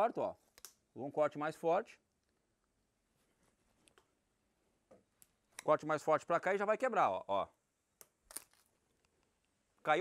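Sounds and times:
knife cracking through pork carcass: 8.3s - 8.6s.

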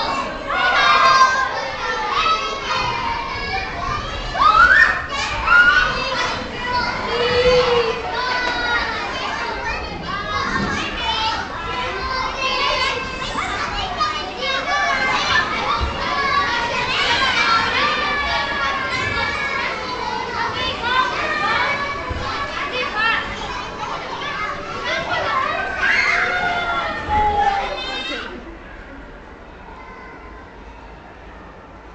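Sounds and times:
children shouting and chattering: 0.0s - 31.9s.

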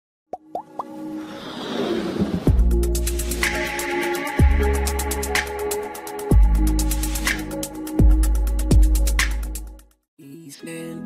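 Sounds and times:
electronic music: 2.5s - 9.8s.

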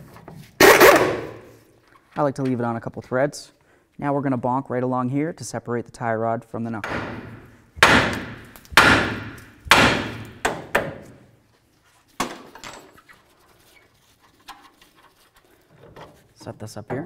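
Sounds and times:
hammer striking steel: 6.8s - 10.9s.

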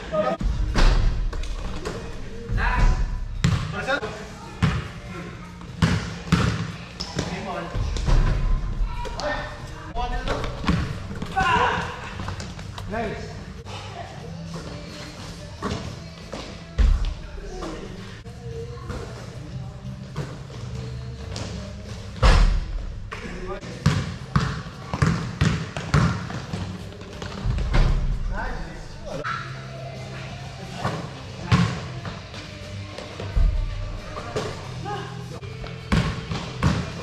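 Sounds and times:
basketball bouncing: 3.4s - 3.7s, 23.8s - 28.0s, 35.9s - 36.9s.

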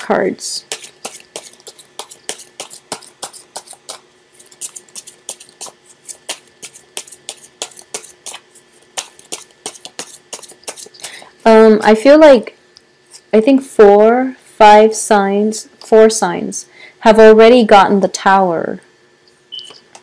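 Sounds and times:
cards being shuffled by hand: 0.6s - 11.3s.

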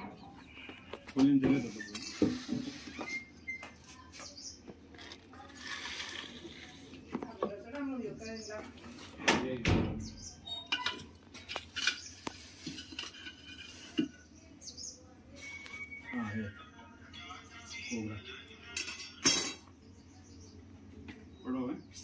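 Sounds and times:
faint voices: 0.0s - 22.0s
metal rod clinking among clutter: 10.6s - 14.2s, 18.8s - 19.7s.

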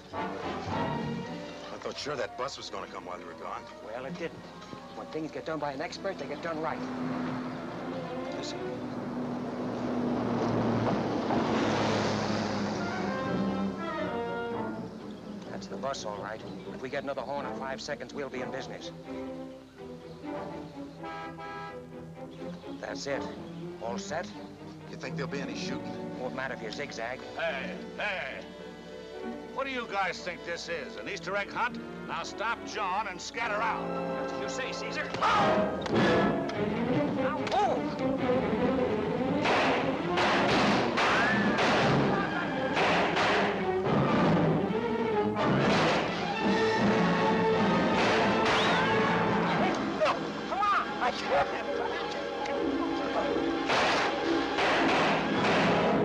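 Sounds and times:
film score music: 0.0s - 56.0s
bus horn: 12.6s - 14.8s, 21.0s - 21.9s
gunshots: 39.4s - 44.4s, 45.4s - 46.3s, 47.8s - 49.2s, 53.6s - 56.0s.

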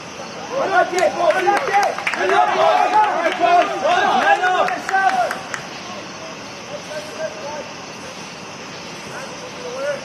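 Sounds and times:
outdoor background hiss: 0.0s - 10.0s
players shouting: 0.4s - 7.7s.

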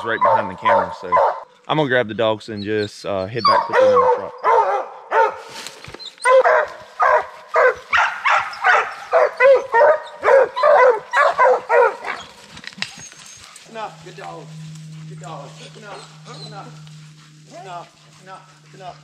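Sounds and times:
hounds barking: 0.0s - 1.6s, 3.3s - 5.6s, 6.2s - 19.0s
low steady hum: 8.6s - 19.0s.

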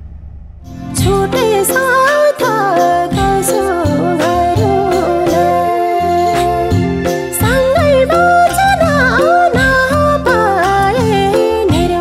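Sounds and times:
instrumental accompaniment: 0.7s - 12.0s
woman singing: 0.8s - 12.0s.

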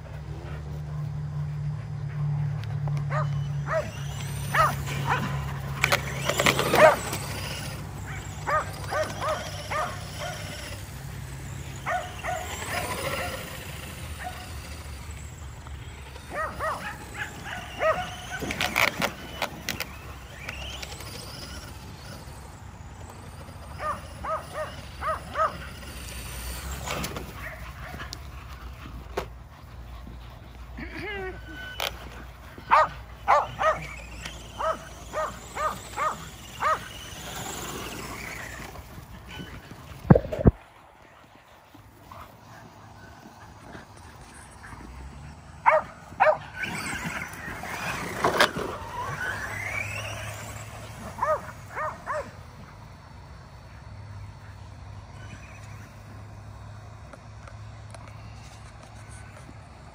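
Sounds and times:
dogs barking in excited bursts: 0.0s - 22.6s, 23.5s - 56.2s
dog barking: 3.1s - 5.3s, 6.7s - 7.0s, 8.1s - 10.5s, 11.9s - 12.4s, 16.3s - 18.2s, 23.8s - 25.6s, 32.7s - 33.9s, 34.6s - 36.8s, 45.6s - 46.4s, 51.2s - 52.3s.

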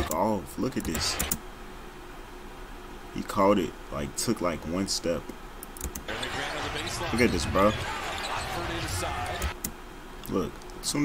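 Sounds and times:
arena crowd noise: 6.1s - 9.6s
faint commentary: 6.1s - 9.6s.

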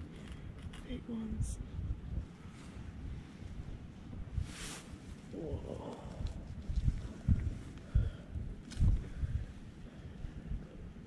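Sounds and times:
rustling of dry pine needles: 4.3s - 9.8s.

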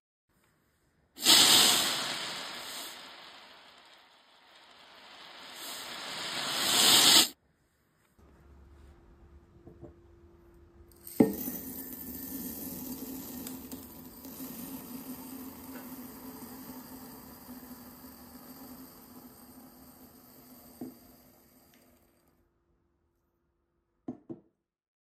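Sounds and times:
glass clink: 10.9s - 19.6s.

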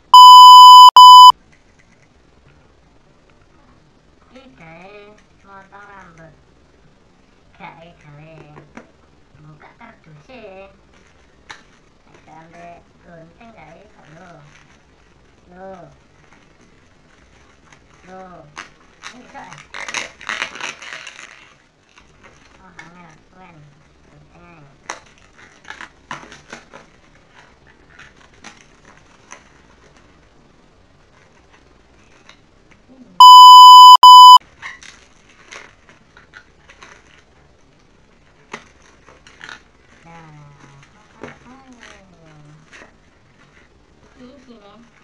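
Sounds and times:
high electronic beep: 0.1s - 1.3s, 33.2s - 34.4s.

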